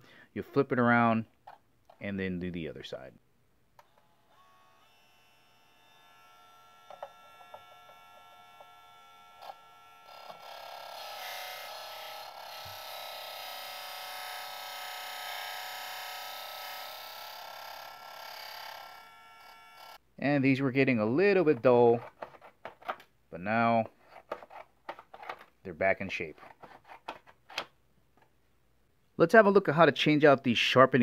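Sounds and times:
electric sharpener motor whine: 0:03.8 - 0:20.0
blade grinding against disc: 0:06.0 - 0:20.0.

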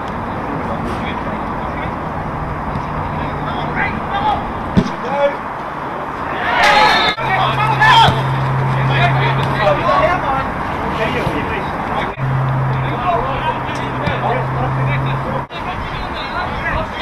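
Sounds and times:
outdoor noise: 0:00.0 - 0:17.0
players shouting: 0:02.8 - 0:17.0
low hum: 0:12.2 - 0:15.4.

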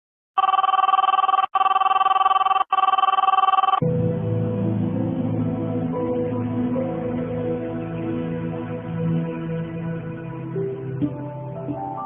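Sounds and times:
telephone bell ringing: 0:00.4 - 0:03.8.

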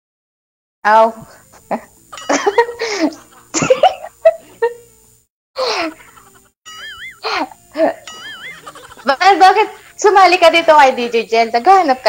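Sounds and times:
people laughing: 0:02.1 - 0:04.8, 0:05.6 - 0:12.0.

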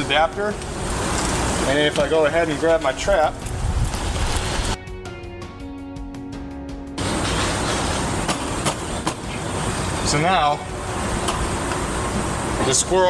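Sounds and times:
music with held notes: 0:04.8 - 0:07.0.

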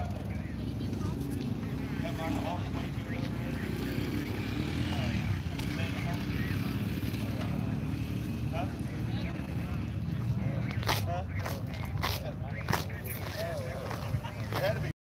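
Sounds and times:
distant voices: 0:00.0 - 0:15.0.

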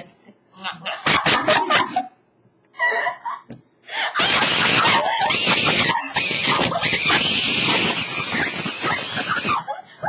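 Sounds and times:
raspy distorted laughter: 0:00.9 - 0:02.2, 0:02.8 - 0:10.0.

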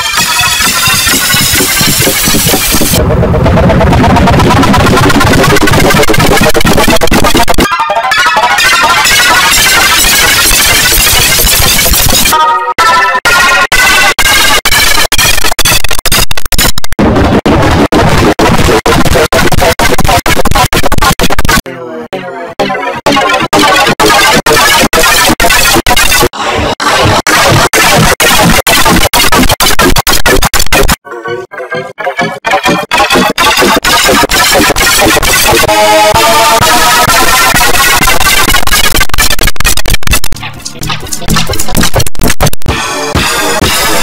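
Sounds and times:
distorted buzzing jingle: 0:00.0 - 0:03.0, 0:04.8 - 0:21.6, 0:22.6 - 0:44.0
choppy layered tones: 0:00.0 - 0:44.0.

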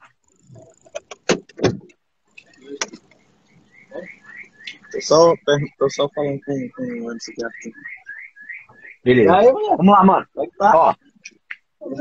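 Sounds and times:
sharp knocks and clicks: 0:00.5 - 0:03.2.

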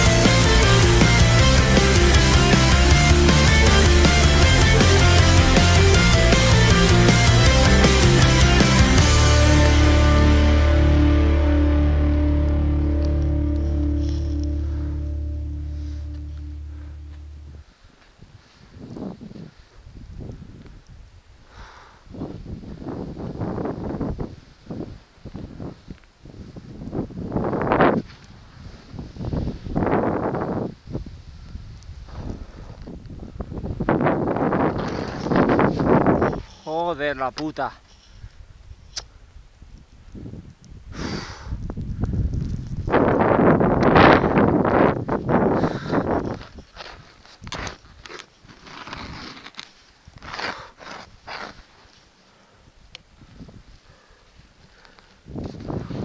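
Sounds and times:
skis and poles crunching snow: 0:15.6 - 0:20.4, 0:33.8 - 0:38.2, 0:42.3 - 0:52.5, 0:53.7 - 0:56.0
wind buffeting microphone: 0:17.4 - 0:36.5, 0:38.2 - 0:48.1, 0:52.6 - 0:56.0
skis rushing through snow: 0:45.2 - 0:52.1.

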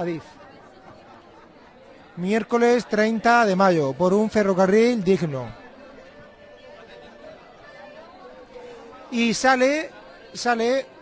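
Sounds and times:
background chatter of people: 0:00.0 - 0:11.0.

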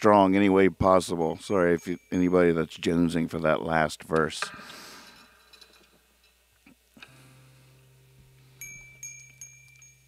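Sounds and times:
steady low hum: 0:00.0 - 0:10.0
metallic chime pings: 0:01.3 - 0:02.7, 0:07.9 - 0:10.0.

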